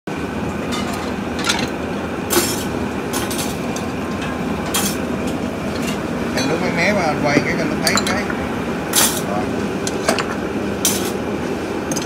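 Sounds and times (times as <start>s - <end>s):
dishes and cutlery clinking: 7.4s - 8.3s.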